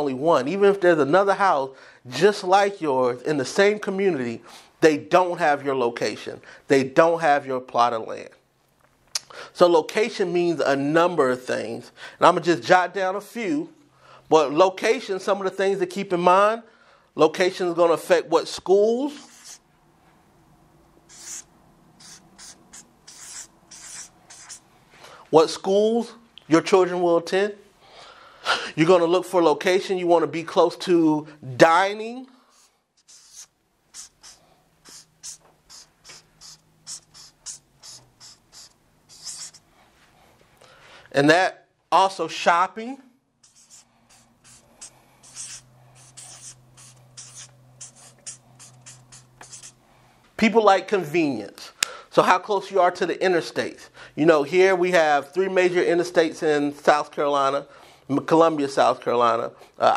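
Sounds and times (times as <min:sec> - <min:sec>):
marker pen scratching on paper: 0:19.2 - 0:19.6, 0:21.1 - 0:24.6, 0:32.5 - 0:39.7, 0:43.4 - 0:49.8.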